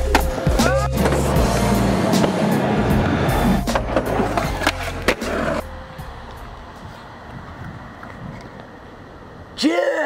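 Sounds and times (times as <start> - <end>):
music soundtrack: 0.0 - 7.2
skateboard clacking on concrete: 3.7 - 5.6.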